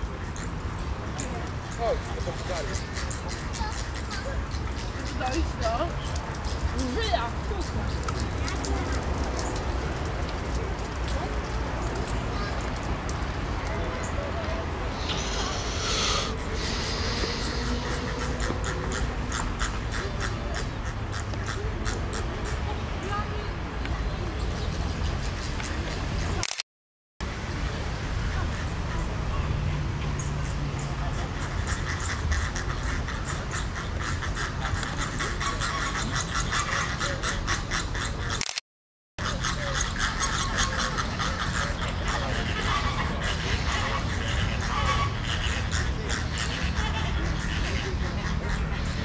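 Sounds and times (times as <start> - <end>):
flamingos honking: 14.9 - 22.6, 31.1 - 38.4, 39.2 - 49.0.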